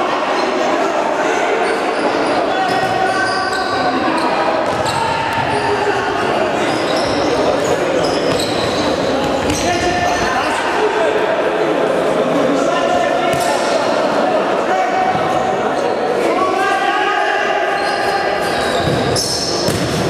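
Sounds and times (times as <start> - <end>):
shoe squeaks: 1.6 - 5.8, 6.6 - 10.6, 17.8 - 19.8.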